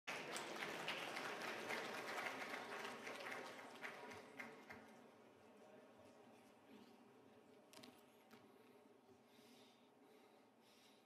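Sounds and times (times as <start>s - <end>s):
audience applause: 0.1s - 4.8s.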